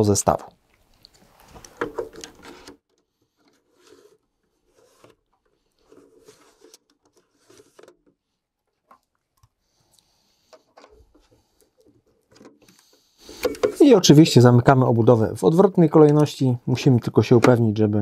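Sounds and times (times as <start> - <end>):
faint plastic clicks and scrapes: 0.7 - 13.8.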